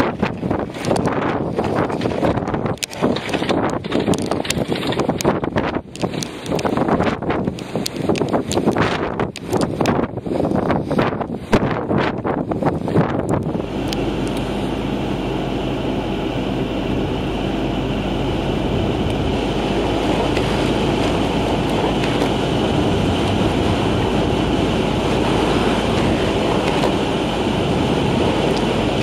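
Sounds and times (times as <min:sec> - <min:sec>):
wind buffeting microphone: 0:00.0 - 0:29.0
car driving on snowy road: 0:12.2 - 0:29.0.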